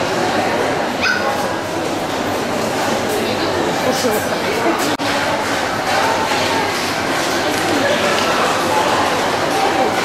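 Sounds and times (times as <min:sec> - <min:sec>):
chatter of voices in a hall: 0:00.0 - 0:10.0
dog yipping: 0:01.0 - 0:01.4.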